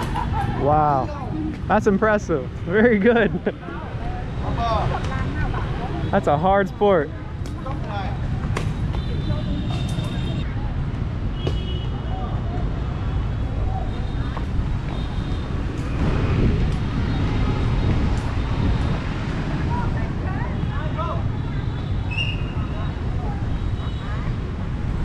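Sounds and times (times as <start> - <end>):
traffic rumble: 0.0 - 25.0.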